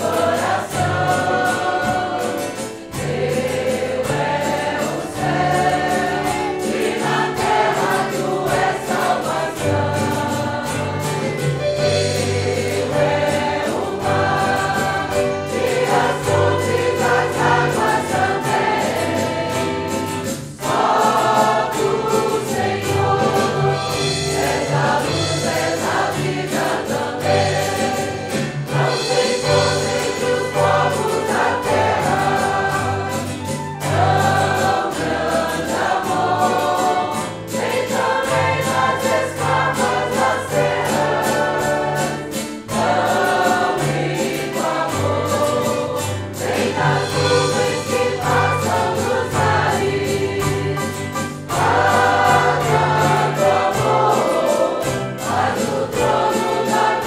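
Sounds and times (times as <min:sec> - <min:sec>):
group singing a hymn: 0:00.0 - 0:57.0
instrumental accompaniment with bass: 0:00.0 - 0:57.0.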